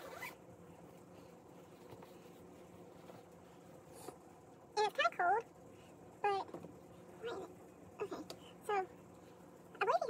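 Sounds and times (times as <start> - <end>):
zip-like fabric swish: 0.0 - 0.4
faint hum: 0.0 - 10.0.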